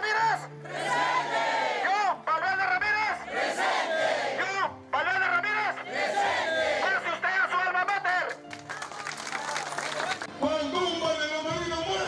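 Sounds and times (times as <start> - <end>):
crowd shouting: 0.7 - 1.9, 3.3 - 4.4, 5.9 - 7.1
man shouting through megaphone: 6.6 - 8.2, 10.4 - 12.0.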